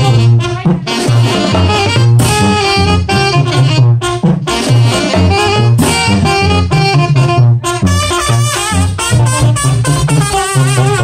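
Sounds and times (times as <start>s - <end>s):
bass line: 0.0s - 11.0s
saxophones and trumpets melody: 0.0s - 11.0s
steady drum beat: 0.0s - 11.0s.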